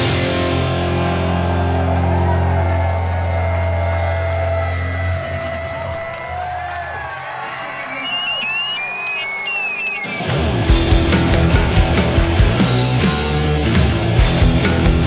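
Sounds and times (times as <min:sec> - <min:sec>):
rock band chord ringing: 0:00.0 - 0:03.1, 0:10.2 - 0:15.0
audience cheering: 0:00.0 - 0:13.0
whistles from audience: 0:07.0 - 0:10.4.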